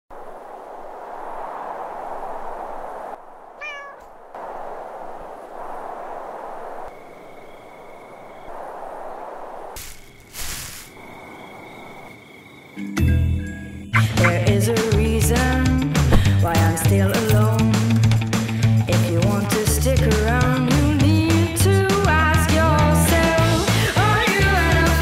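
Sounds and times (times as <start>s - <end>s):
steady hissing ambience: 0.1s - 12.9s
cat meowing: 3.6s - 4.1s.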